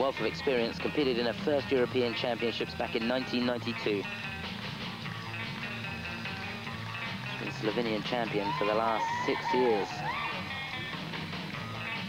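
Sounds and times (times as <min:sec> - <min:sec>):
guitar-led instrumental music: 0:00.0 - 0:12.0.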